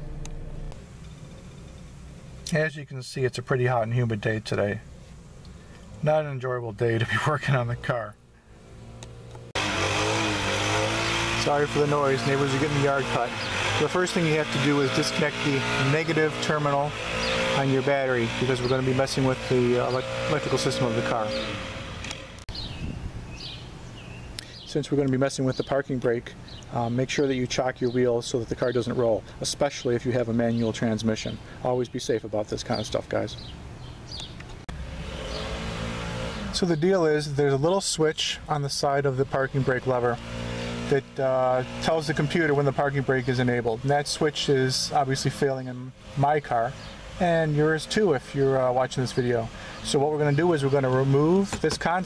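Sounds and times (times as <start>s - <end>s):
lawn mower engine running: 0.0s - 2.5s, 8.6s - 22.7s, 34.7s - 37.6s, 38.2s - 52.0s
outdoor background noise: 0.0s - 52.0s.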